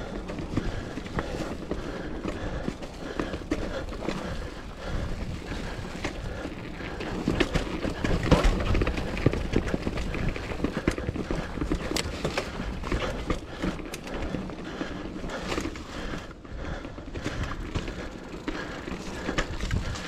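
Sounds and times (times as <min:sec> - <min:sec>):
bike clattering over bumps: 0:00.0 - 0:20.0
bike tyres rolling on dirt: 0:00.0 - 0:20.0.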